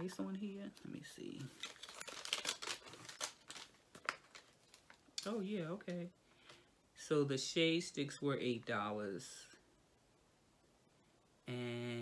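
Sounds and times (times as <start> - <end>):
crinkly packaging rustling: 0.0 - 6.6.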